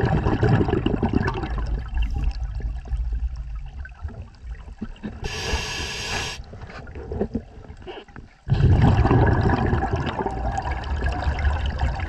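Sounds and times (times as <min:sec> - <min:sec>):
underwater exhaust bubbles gurgling: 0:00.0 - 0:12.0.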